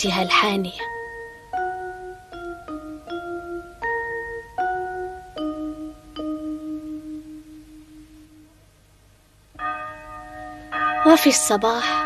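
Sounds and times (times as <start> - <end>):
bell ringing: 9.6 - 12.0.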